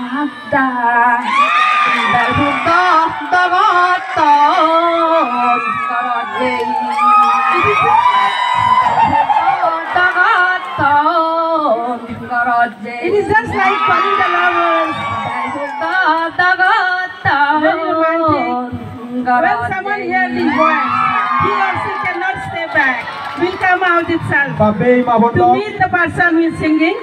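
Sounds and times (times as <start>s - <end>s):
crowd noise: 0.0s - 27.0s.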